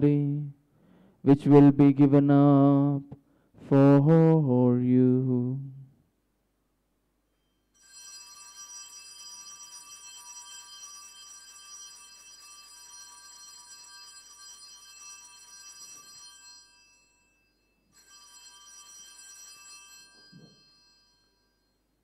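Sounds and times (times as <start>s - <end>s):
altar bells jingling: 7.8s - 22.0s.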